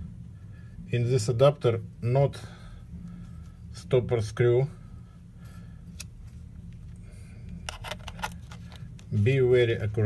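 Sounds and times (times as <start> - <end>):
low steady hum: 0.0 - 10.0
metallic clicks of lens adapter: 7.6 - 9.0.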